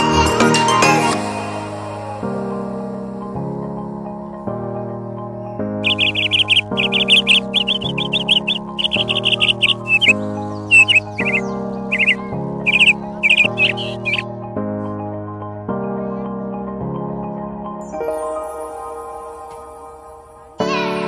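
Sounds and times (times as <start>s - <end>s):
background music with slow chords: 0.0s - 21.0s
bird chirping in trills: 5.8s - 14.2s.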